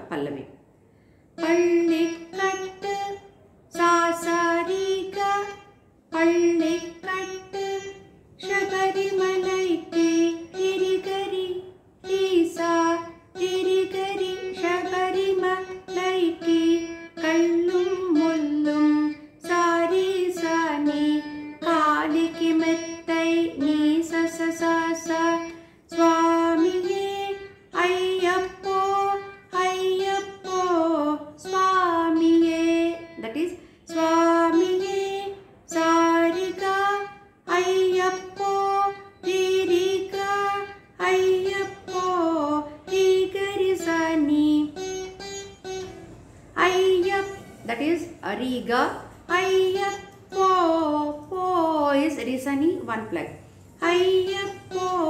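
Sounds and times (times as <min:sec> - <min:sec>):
plucked veena melody: 0:01.4 - 0:55.0.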